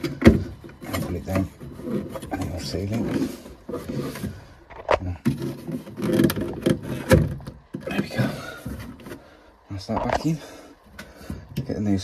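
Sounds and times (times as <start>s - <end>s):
plastic scraping on rubber seal: 0.0s - 9.3s.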